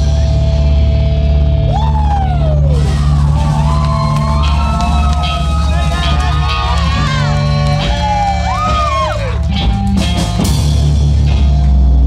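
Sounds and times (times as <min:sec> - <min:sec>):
electric guitar: 0:00.0 - 0:12.0
loud bass: 0:00.0 - 0:12.0.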